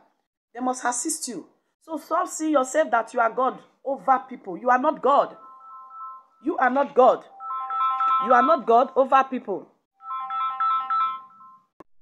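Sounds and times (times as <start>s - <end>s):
electronic ringtone melody: 5.3s - 6.6s, 7.2s - 8.7s, 10.0s - 11.8s.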